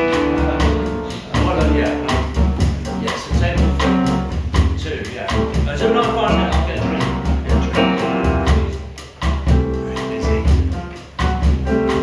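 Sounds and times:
piano: 0:00.0 - 0:12.0
plucked double bass: 0:00.0 - 0:12.0.

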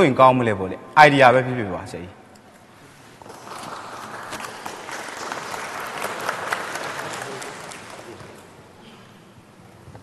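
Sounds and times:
audience applauding: 0:03.2 - 0:08.6.

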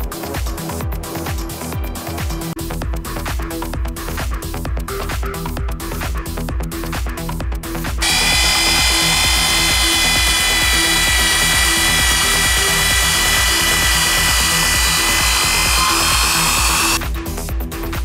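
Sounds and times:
electric drill whining: 0:08.0 - 0:17.0.

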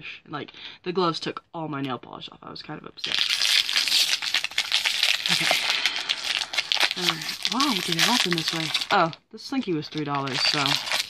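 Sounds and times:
packaging crinkling and tearing: 0:03.0 - 0:11.0.

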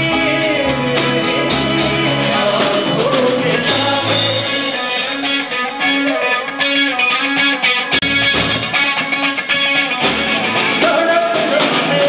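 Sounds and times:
repeated low bass notes: 0:00.0 - 0:05.8
drums: 0:00.0 - 0:12.0
electric guitar: 0:00.0 - 0:12.0.

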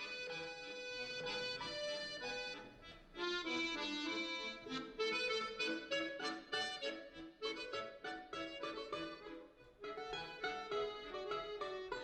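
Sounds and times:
accordion chords: 0:00.0 - 0:12.0.

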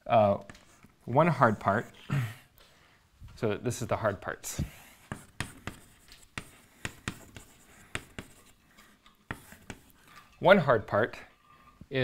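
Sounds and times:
chalk tapping and scraping: 0:00.4 - 0:02.1, 0:04.4 - 0:10.3.

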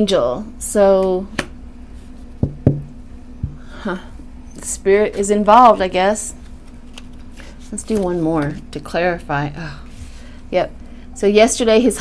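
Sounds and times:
card deck knocking on tabletop: 0:02.4 - 0:03.6.

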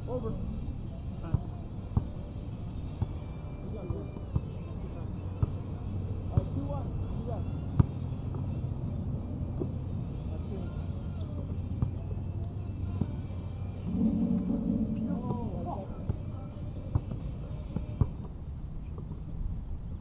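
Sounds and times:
steady low hum: 0:13.8 - 0:16.1.

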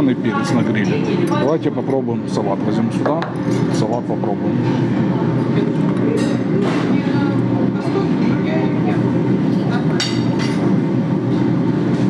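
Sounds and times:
many people talking: 0:00.0 - 0:11.0.

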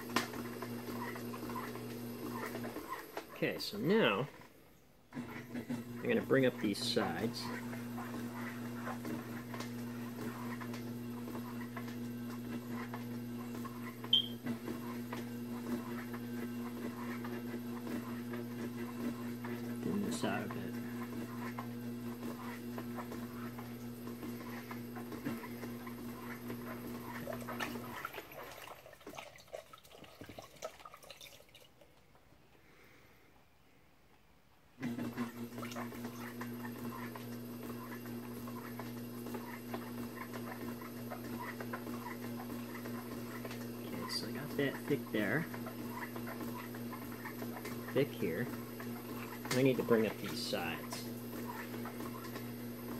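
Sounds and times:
pottery wheel motor humming: 0:00.0 - 0:28.8, 0:34.8 - 0:52.9
short sharp squeak: 0:14.1 - 0:14.4
hands rubbing wet spinning clay: 0:37.8 - 0:52.4.

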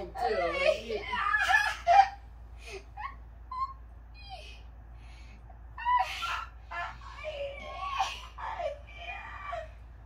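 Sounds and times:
high whimpering cries: 0:00.2 - 0:04.8, 0:05.7 - 0:10.0.

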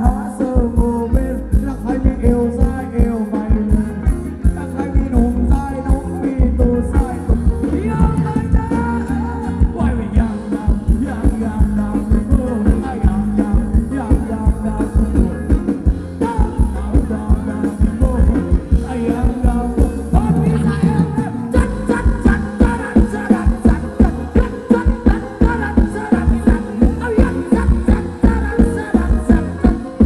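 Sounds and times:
amplified band music: 0:00.0 - 0:30.0
driving drum beat: 0:00.0 - 0:30.0
person singing: 0:00.0 - 0:30.0.

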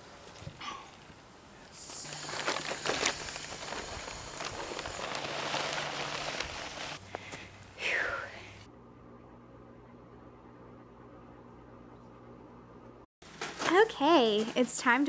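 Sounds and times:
dirt crunching and scraping: 0:01.8 - 0:07.5.

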